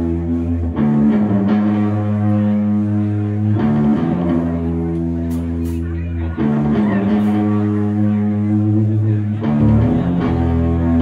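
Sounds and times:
heavy distorted guitar chord: 0.0s - 11.0s.

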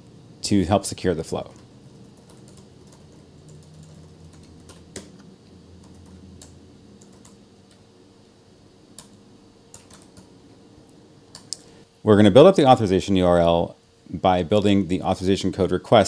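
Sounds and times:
typing on computer keyboard: 1.6s - 5.2s, 5.8s - 7.4s, 9.0s - 10.3s.

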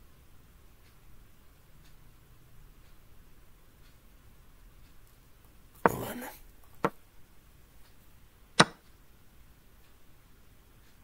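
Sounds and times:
sharp click sound effect: 8.6s - 8.8s.

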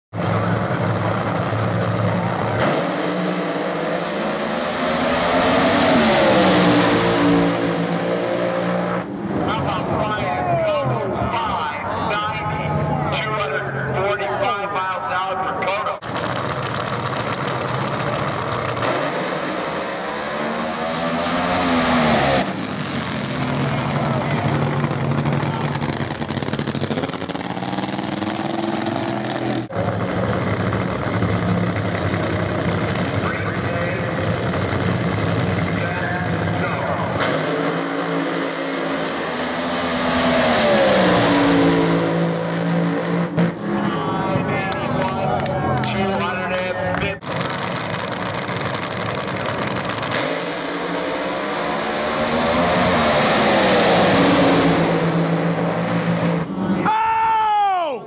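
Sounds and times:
drag racing engine roaring: 0.1s - 57.0s.

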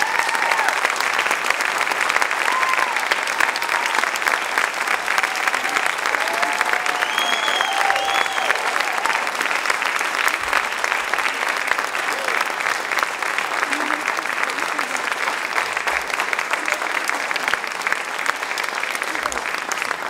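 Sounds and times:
cheers and whoops: 0.0s - 1.1s, 2.2s - 9.6s, 12.0s - 12.6s
audience applauding: 0.0s - 20.0s.

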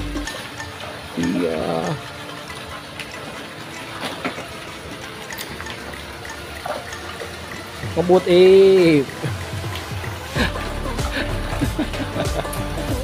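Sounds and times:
water pouring into pond: 0.0s - 13.0s.

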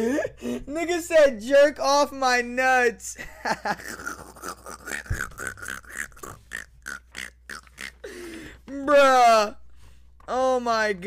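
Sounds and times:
man wheezing laughter: 0.0s - 0.6s, 3.2s - 5.4s.

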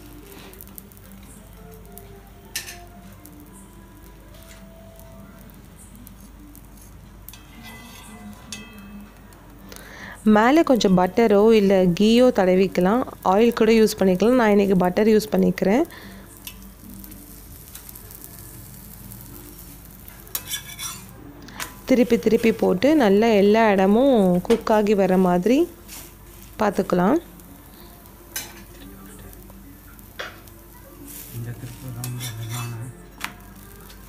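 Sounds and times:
butter sizzling in a pan: 0.0s - 34.0s
spatula scraping on griddle: 6.0s - 9.0s, 16.4s - 23.5s, 24.5s - 26.8s, 27.5s - 29.4s, 30.2s - 34.0s
metal spatula scraping a pan: 6.8s - 8.9s, 19.5s - 23.0s, 32.0s - 32.9s.

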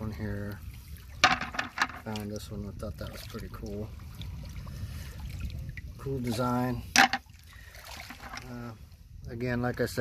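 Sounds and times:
lakeshore water rumble: 0.0s - 10.0s.

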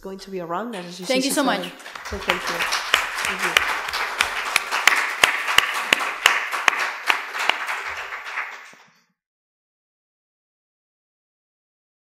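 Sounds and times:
audience applauding: 0.8s - 9.0s
single sharp claps: 1.1s - 8.9s.

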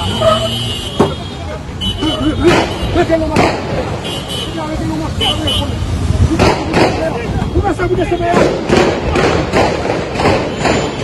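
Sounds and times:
people talking: 0.0s - 9.4s
low rumble of vehicles: 0.0s - 11.0s.

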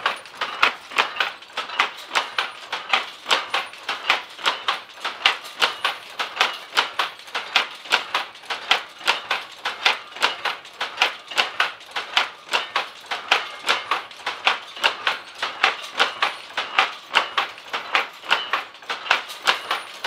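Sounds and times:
power loom clacking: 0.0s - 20.0s.

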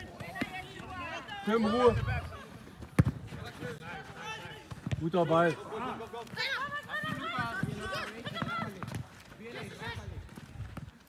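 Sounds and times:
football kick thud: 2.9s - 3.4s.

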